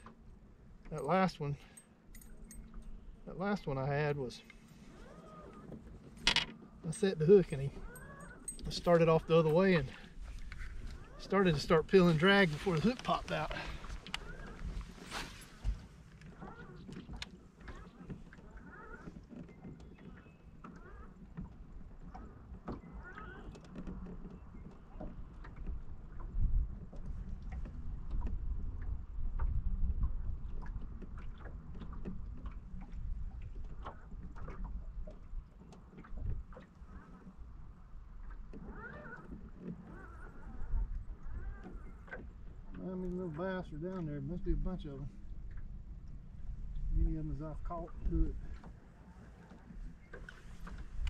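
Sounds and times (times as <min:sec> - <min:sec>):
clicks and knocks of fishing tackle: 0:05.4 - 0:24.8.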